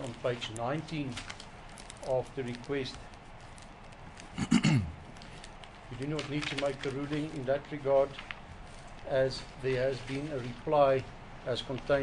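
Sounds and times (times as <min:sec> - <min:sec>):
man coughing: 0:04.4 - 0:05.0.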